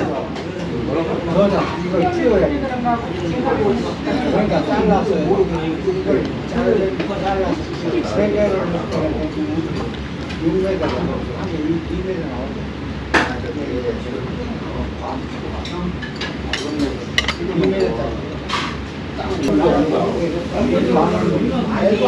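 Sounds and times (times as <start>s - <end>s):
cutlery clinking on ceramic plate: 16.0s - 17.9s.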